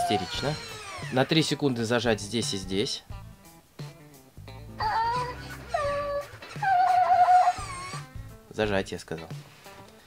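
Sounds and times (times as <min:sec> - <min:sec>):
toy electronic voice wailing: 0:00.0 - 0:00.9, 0:04.8 - 0:08.1.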